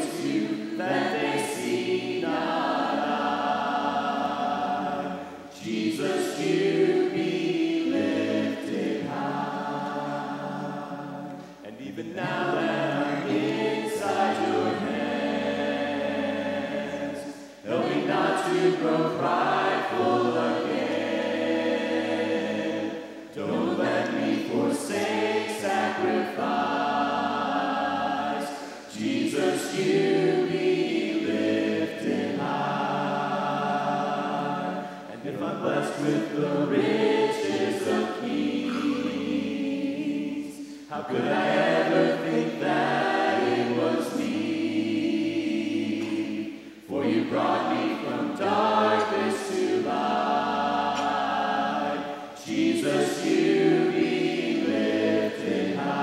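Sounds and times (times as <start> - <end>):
group singing a hymn in harmony: 0.0 - 56.0.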